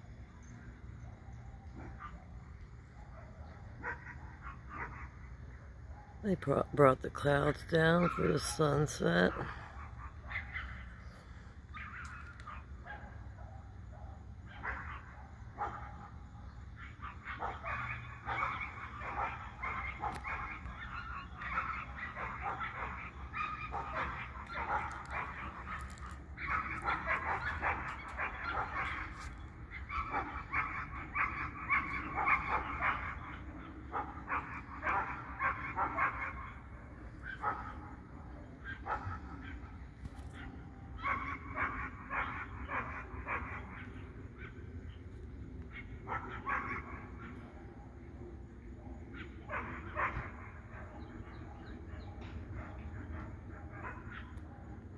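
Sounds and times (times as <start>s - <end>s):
dogs barking: 1.0s - 54.9s.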